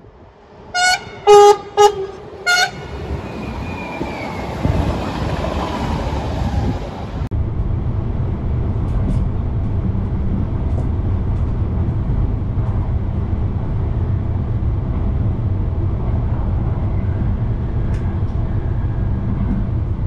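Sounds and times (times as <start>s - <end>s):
train rumble: 0.0s - 20.0s
two-tone train horn toots: 0.7s - 3.0s.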